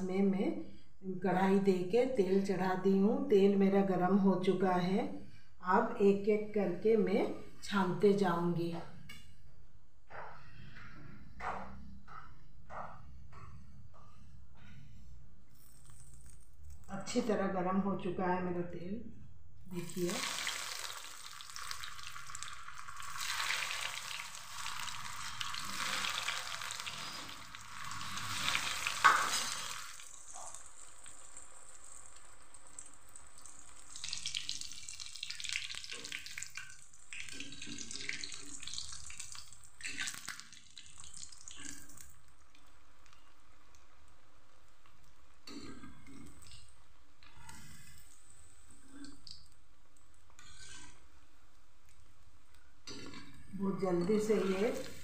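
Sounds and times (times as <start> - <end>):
food sizzling in hot oil: 19.8 - 42.4, 54.1 - 55.0
spoon scraping and tapping pan: 28.5 - 29.7.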